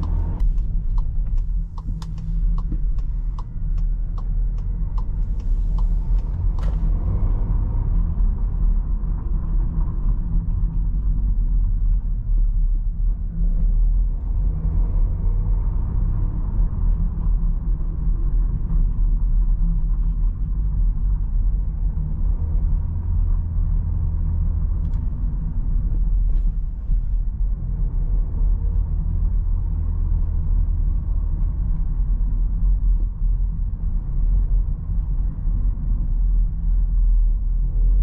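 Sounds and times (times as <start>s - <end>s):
light ticks: 0.0s - 6.8s
car engine in cabin: 0.0s - 38.0s
road and tyre rumble: 0.0s - 38.0s.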